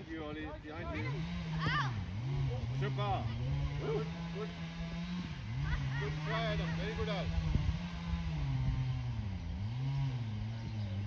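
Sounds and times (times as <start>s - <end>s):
motor drone: 0.6s - 11.0s
young players shouting: 0.9s - 2.0s, 5.6s - 7.0s.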